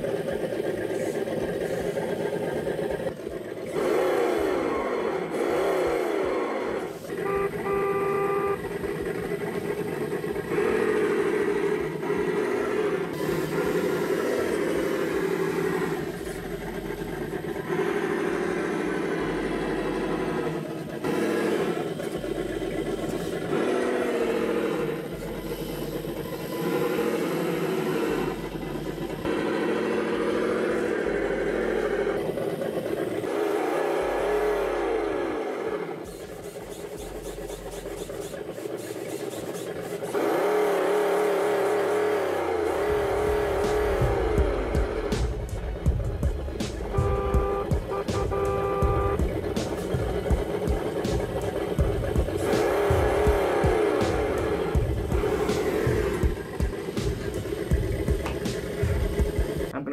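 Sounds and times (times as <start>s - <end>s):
engine revving: 0.0s - 59.9s.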